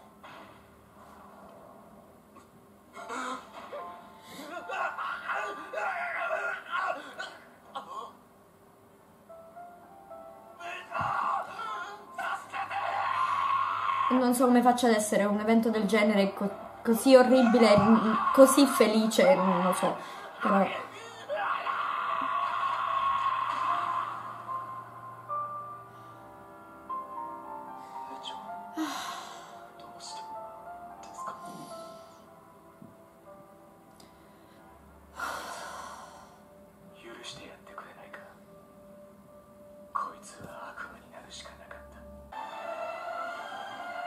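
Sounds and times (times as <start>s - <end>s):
faint high music tones: 2.9s - 44.0s
man screaming: 4.5s - 7.3s, 10.6s - 14.2s, 17.5s - 18.8s, 20.7s - 24.4s
woman gasping: 28.7s - 29.6s.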